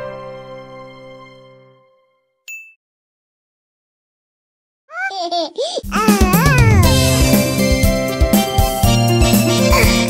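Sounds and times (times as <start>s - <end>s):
children's song closing chord: 6.4s - 7.8s.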